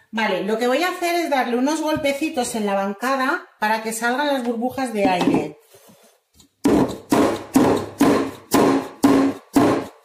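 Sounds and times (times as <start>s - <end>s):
metal pot knocking on counter: 5.0s - 5.5s.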